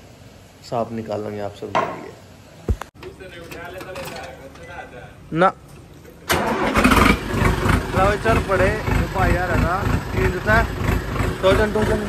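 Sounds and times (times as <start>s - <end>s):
starter whine: 5.7s - 12.0s
tractor engine running: 5.8s - 12.0s.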